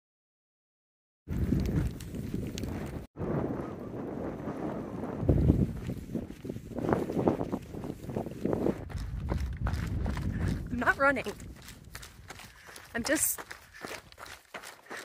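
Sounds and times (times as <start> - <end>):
footsteps on dirt trail: 1.3 - 3.0, 5.0 - 15.0
wind buffeting microphone: 1.3 - 14.8.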